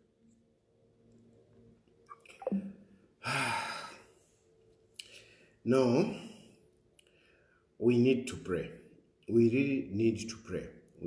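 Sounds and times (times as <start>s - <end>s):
man sighing: 3.2s - 4.1s.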